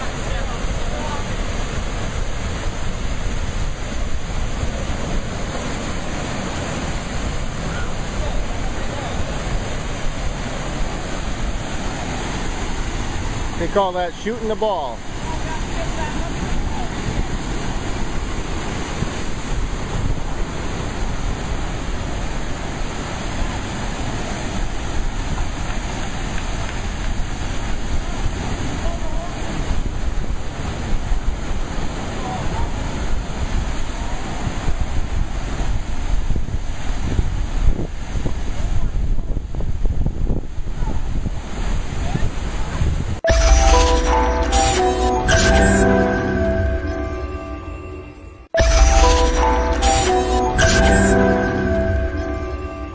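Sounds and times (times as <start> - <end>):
ocean waves surging over rocks: 0.0 - 35.9
wind buffeting microphone: 15.0 - 43.2.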